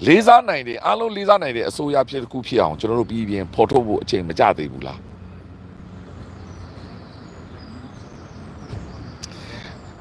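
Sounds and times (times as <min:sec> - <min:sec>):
distant traffic rumble: 0:00.0 - 0:10.0.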